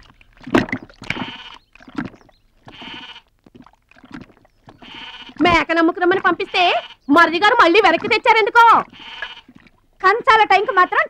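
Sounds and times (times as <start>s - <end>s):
animal bleating: 1.0s - 1.6s, 2.6s - 3.3s, 4.7s - 9.6s, 10.5s - 11.0s.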